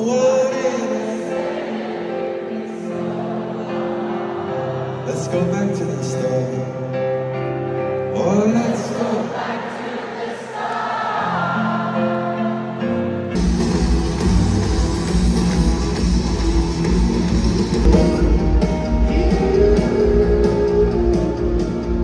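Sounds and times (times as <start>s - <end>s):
drums and heavy bass: 13.4s - 22.0s.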